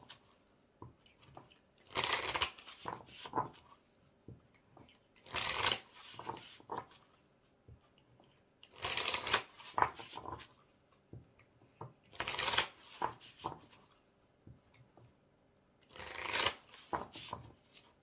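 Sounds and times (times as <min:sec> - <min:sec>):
cards shuffled by hand: 0:01.2 - 0:03.8, 0:05.2 - 0:07.2, 0:08.7 - 0:10.7, 0:11.8 - 0:13.9, 0:15.9 - 0:17.9.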